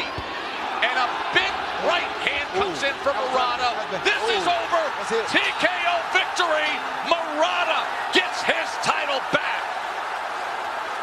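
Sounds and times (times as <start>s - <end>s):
crowd cheering roar: 0.0s - 11.0s
excited shouting voices: 0.0s - 11.0s.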